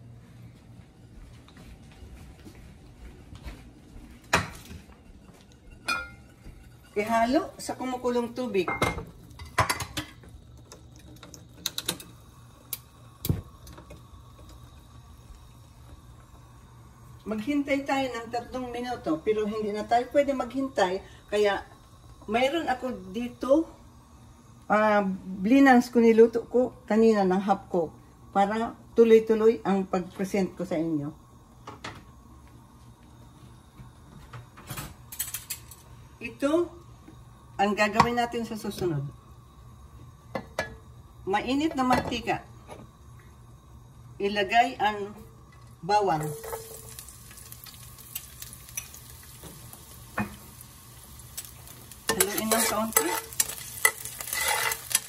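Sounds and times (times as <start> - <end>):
pot of water boiling: 2.2 - 55.0
gas stove igniter clicking: 10.7 - 14.6.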